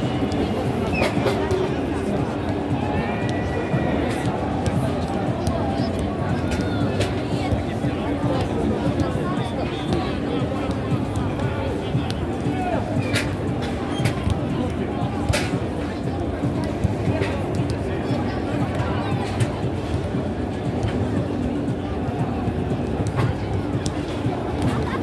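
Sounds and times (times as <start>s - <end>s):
stadium crowd babble: 0.0s - 25.0s.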